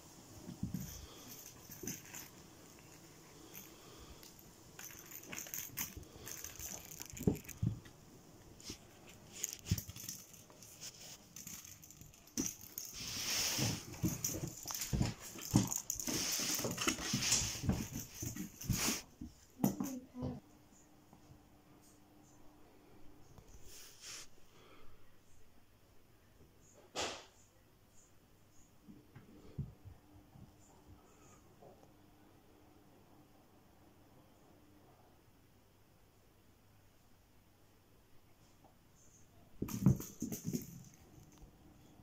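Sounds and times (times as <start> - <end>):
cat rustling and scrabbling: 0.4 - 20.0
toy ball bouncing on floor: 39.6 - 41.0.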